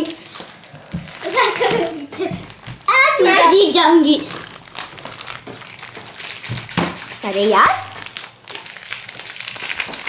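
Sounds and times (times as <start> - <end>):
plastic wrapper crinkling: 0.0 - 10.0.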